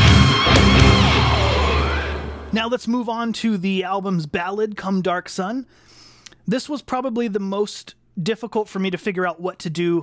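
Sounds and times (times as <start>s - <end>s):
distorted electric bass: 0.0s - 2.6s
low bass note ringing: 0.0s - 2.7s
heavy metal song: 0.0s - 2.8s.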